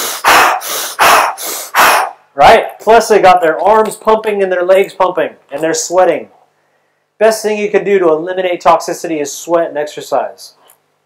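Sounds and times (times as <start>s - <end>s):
man panting hard: 0.0s - 2.2s.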